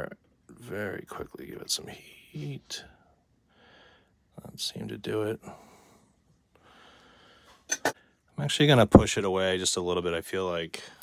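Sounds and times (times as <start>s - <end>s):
faint breath: 2.8s - 4.2s, 5.4s - 8.3s.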